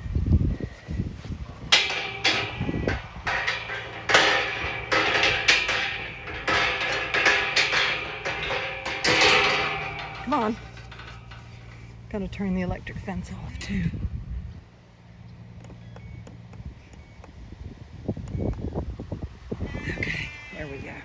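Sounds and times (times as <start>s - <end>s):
metal gate rattling and clanking: 1.6s - 13.7s.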